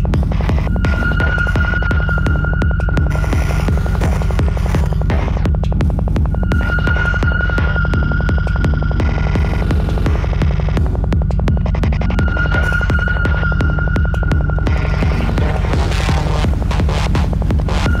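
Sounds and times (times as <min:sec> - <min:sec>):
psytrance music: 0:00.0 - 0:18.0
high held synth note: 0:00.7 - 0:05.1.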